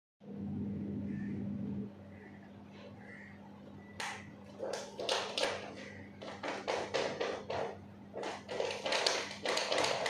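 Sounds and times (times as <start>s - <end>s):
plastic bag crinkling and scratching: 4.6s - 10.0s.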